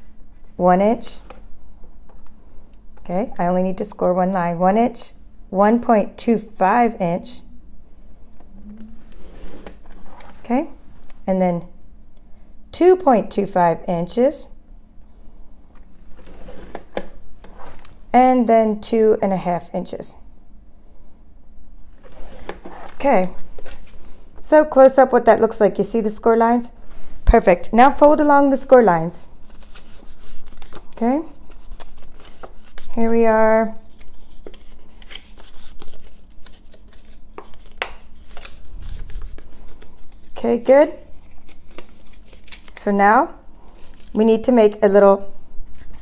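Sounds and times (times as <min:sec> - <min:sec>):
paper rustling: 0:29.4 - 0:42.8.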